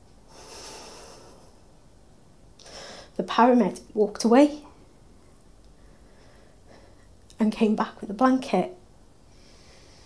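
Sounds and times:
woman breathing: 0.2s - 1.7s, 2.6s - 3.2s, 5.8s - 7.2s, 9.2s - 10.0s.

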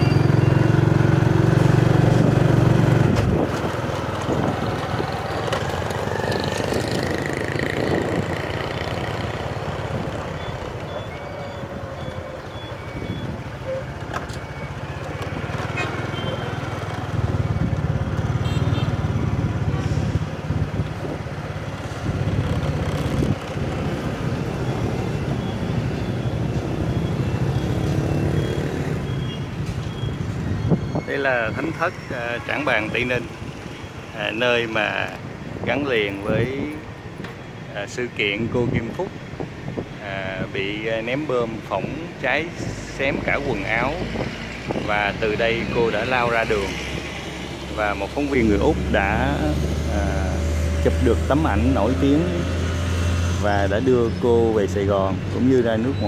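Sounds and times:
motorbike engine passing: 0.0s - 10.4s
heavy vehicle engines passing: 0.0s - 56.0s.

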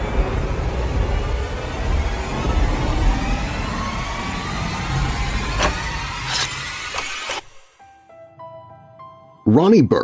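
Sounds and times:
dense rumble: 0.0s - 6.9s
faint rising tones: 0.0s - 9.1s.

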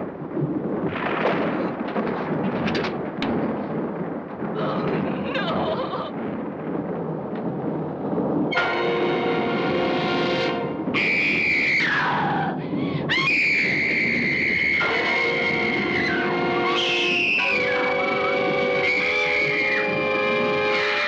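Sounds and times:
low rumbling noise: 0.0s - 21.0s
woman screaming: 11.8s - 13.6s.

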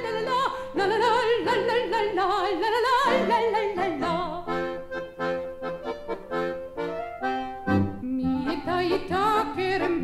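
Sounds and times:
woman singing with wide vibrato: 0.0s - 4.7s, 7.9s - 10.0s
instrumental accompaniment: 3.0s - 10.0s.

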